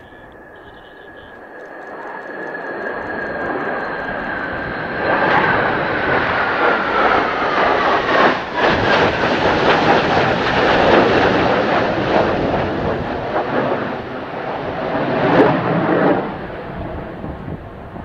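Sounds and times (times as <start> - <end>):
fighter jets passing overhead: 0.0 - 18.0.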